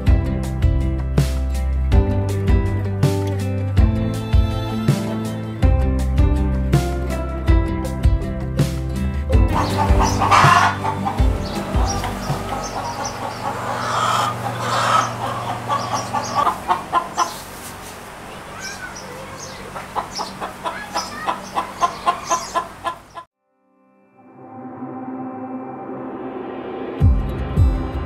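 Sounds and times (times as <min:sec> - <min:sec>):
soft background music: 0:00.0 - 0:17.1
chickens clucking: 0:04.1 - 0:05.5, 0:09.5 - 0:23.3.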